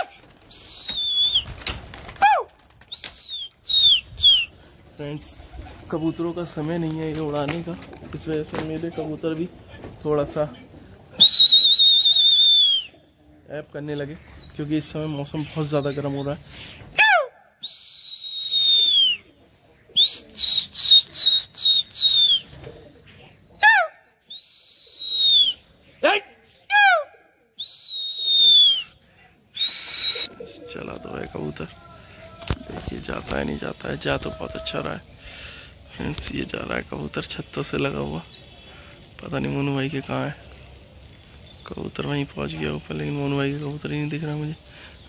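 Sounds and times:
pigeon wings flapping: 0.0 - 3.6, 5.4 - 9.2, 20.5 - 22.8
short high whistles: 11.2 - 12.9, 17.6 - 19.2, 20.0 - 22.5, 24.3 - 25.6, 27.6 - 29.0, 29.6 - 30.3
high downward sliding calls: 29.6 - 30.5.

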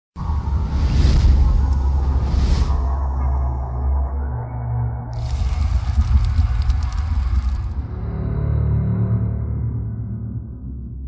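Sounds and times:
deep bass drone: 0.2 - 11.0
crackling fire: 5.2 - 7.9.

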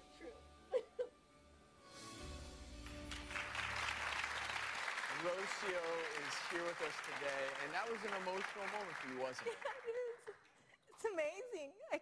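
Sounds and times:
studio audience applauding: 2.8 - 10.6.

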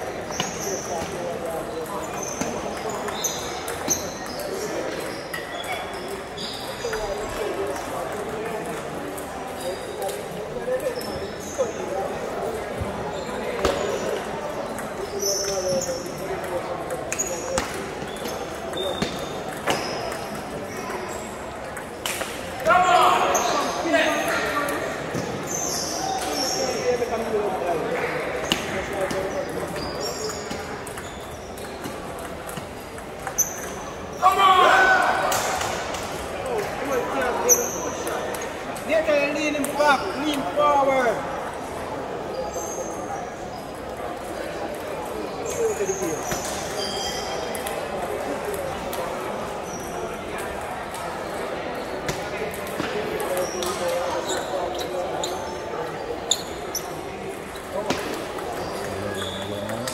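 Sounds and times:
voices: 52.2 - 59.9.

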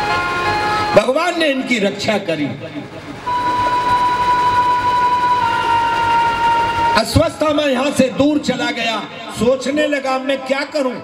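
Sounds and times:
held musical note: 2.8 - 7.9.

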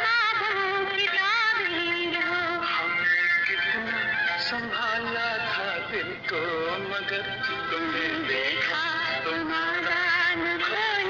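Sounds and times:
old film song with vibrato: 0.0 - 11.0.

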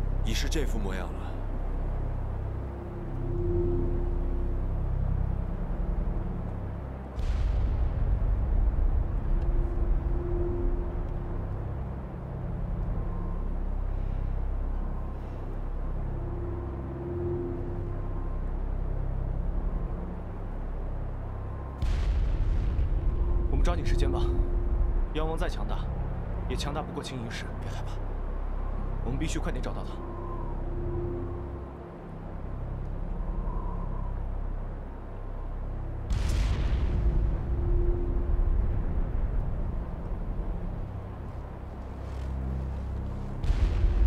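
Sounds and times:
soft sustained musical note: 0.0 - 44.0
deep volcano rumble: 1.2 - 44.0.

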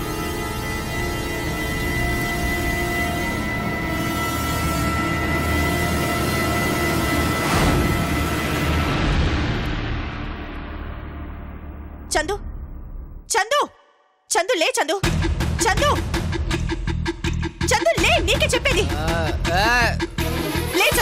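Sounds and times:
dramatic background score: 0.0 - 14.3, 15.0 - 21.0.

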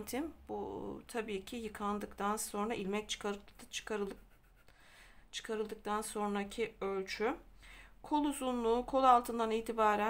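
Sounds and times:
woman speaking: 0.0 - 4.3, 5.3 - 10.0
pen rubbing on paper: 4.0 - 4.7.

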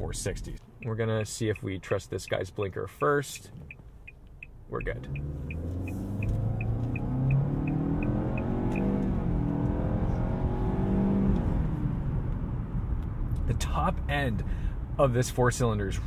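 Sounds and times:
turn-signal clicker ticking: 0.8 - 9.1
car engine accelerating: 3.6 - 14.1.

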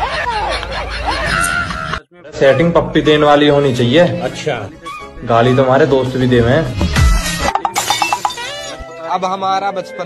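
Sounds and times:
music: 2.2 - 10.0.

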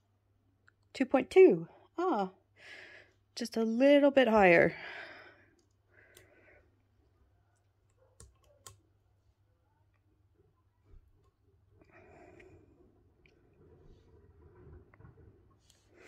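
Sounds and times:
faint clicks of small metal parts: 5.5 - 6.3.

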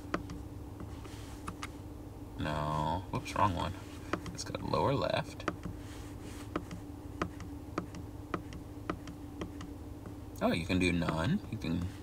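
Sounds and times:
car engine idling hum: 0.0 - 12.0.

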